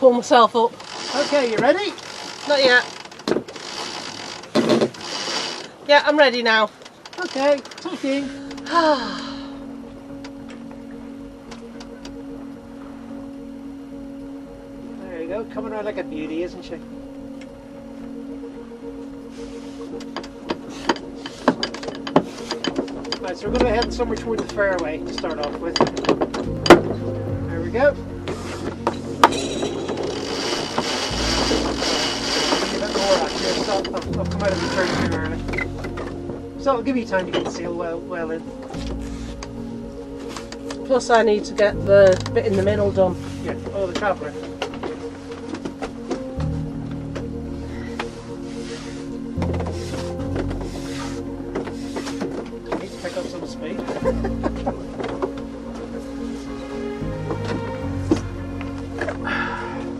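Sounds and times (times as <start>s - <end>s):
winch ratchet clicking: 0.8s - 5.8s, 6.8s - 7.9s
steady low hum: 8.1s - 59.9s.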